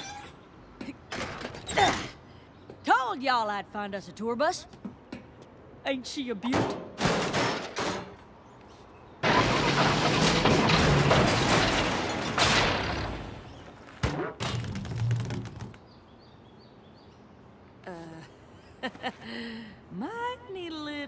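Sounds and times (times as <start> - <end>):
sharp metal clanks and thuds: 6.6 - 8.2, 9.2 - 14.8
metal parts clattering crash: 9.2 - 13.5.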